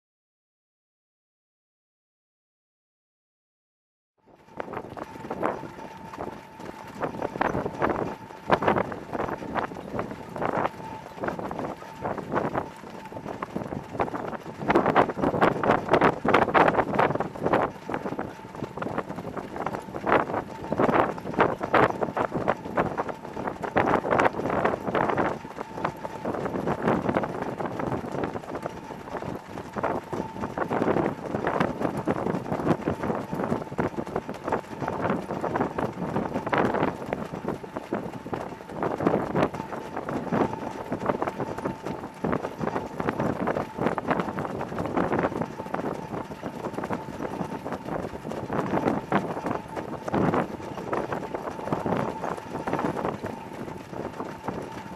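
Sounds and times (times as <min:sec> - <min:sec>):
wind buffeting microphone: 0:04.4 - 0:54.9.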